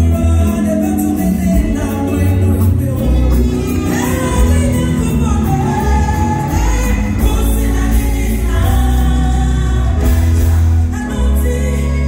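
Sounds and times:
group of singers: 0.0 - 12.0
heavy bass line: 0.0 - 12.0
lead vocalist singing: 0.0 - 12.0.

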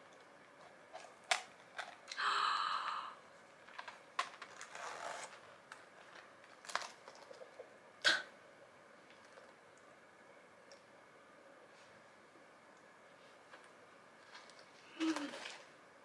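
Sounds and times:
pouch clicks and rustles: 4.2 - 5.4
metal zipper zip: 4.6 - 5.4.

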